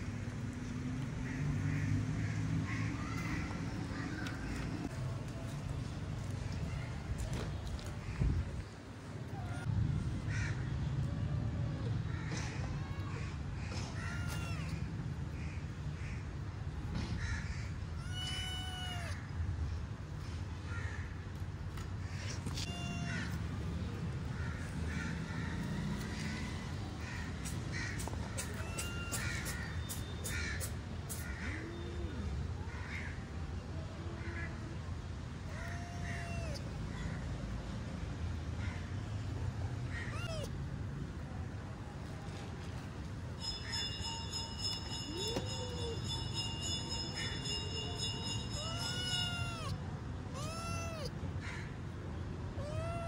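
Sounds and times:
cat meowing: 9.3s - 9.7s, 14.0s - 14.8s, 17.9s - 19.2s, 22.5s - 23.4s, 28.4s - 29.6s, 35.5s - 36.7s, 40.0s - 40.5s, 48.5s - 51.2s, 52.6s - 53.0s
animal calls: 28.0s - 32.2s, 40.0s - 40.5s, 48.4s - 49.8s.

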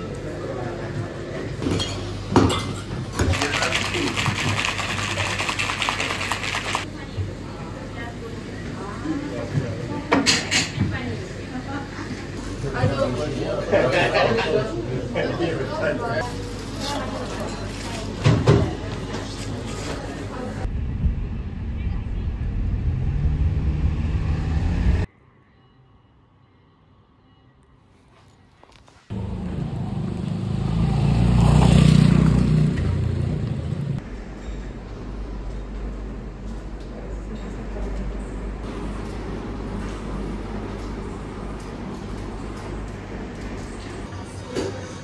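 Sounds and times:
cocktail shaker rattling with ice: 3.3s - 6.8s.

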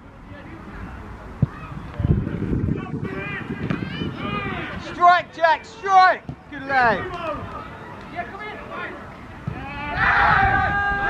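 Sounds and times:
men shouting: 9.6s - 11.0s.

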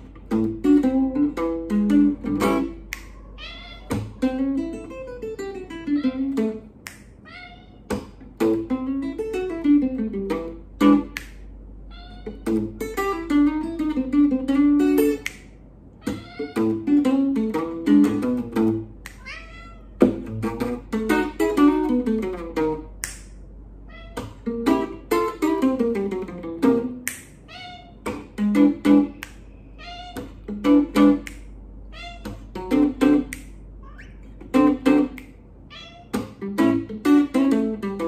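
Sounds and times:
electric guitar blues phrases: 0.0s - 2.9s, 3.9s - 6.8s, 7.8s - 11.2s, 16.1s - 19.3s, 20.0s - 23.0s, 24.2s - 27.0s, 28.3s - 29.2s, 30.2s - 31.3s, 36.1s - 38.0s
cat meowing: 3.0s - 4.8s, 5.4s - 6.6s, 7.2s - 8.2s, 11.9s - 13.0s, 16.0s - 17.2s, 19.2s - 20.3s, 23.8s - 24.6s, 27.4s - 28.2s, 29.7s - 30.5s, 31.9s - 32.6s, 33.8s - 34.4s, 35.7s - 36.4s.

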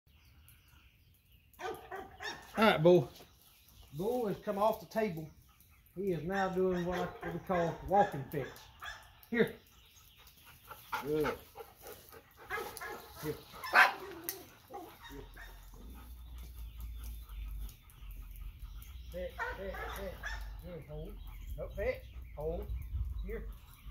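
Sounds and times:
dog barking: 1.6s - 2.6s, 6.3s - 9.1s, 12.5s - 15.6s, 19.4s - 20.6s.

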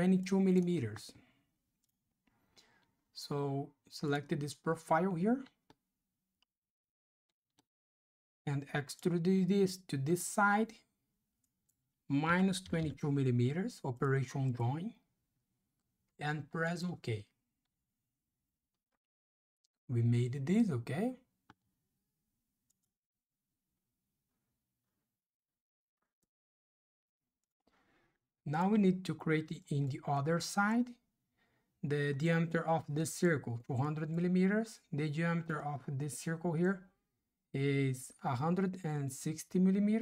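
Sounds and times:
person speaking: 0.0s - 1.2s, 8.5s - 10.9s, 12.1s - 15.1s, 16.2s - 17.4s, 19.9s - 21.3s, 28.4s - 31.0s.

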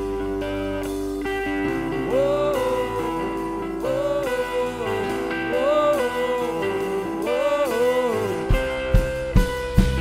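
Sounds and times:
electric guitar lick: 0.0s - 10.0s.

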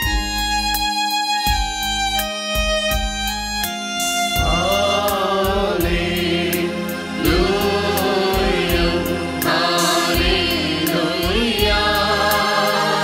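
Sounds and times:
electronic keyboard with beat: 0.0s - 13.0s
choir singing a hymn: 4.4s - 13.0s.

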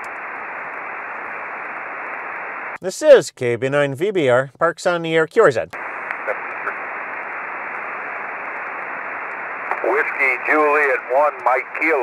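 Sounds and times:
radio band noise hiss: 0.0s - 2.8s, 5.8s - 12.0s
radio voice: 5.8s - 7.2s, 9.7s - 12.0s.

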